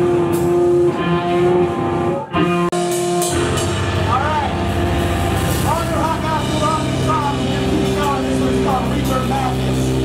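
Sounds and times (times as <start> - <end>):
low amplifier drone: 0.0 - 10.0
person speaking: 5.6 - 10.0.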